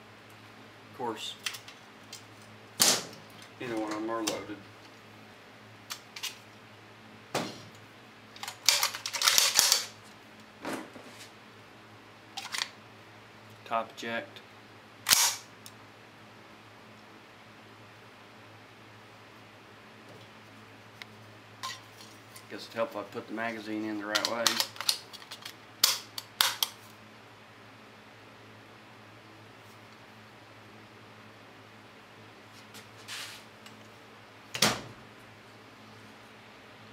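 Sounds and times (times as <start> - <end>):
gun action clacking and rattling: 8.4 - 10.0, 24.1 - 26.8.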